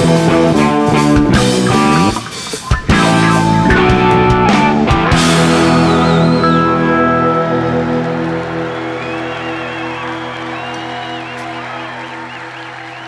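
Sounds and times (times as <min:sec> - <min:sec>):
electric guitars ringing out: 0:00.0 - 0:13.0
crowd whistling and cheering: 0:05.2 - 0:13.0.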